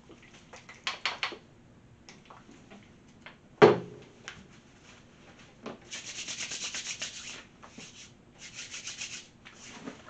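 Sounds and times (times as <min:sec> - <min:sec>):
hands rubbing on cloth towel: 0:05.9 - 0:09.8.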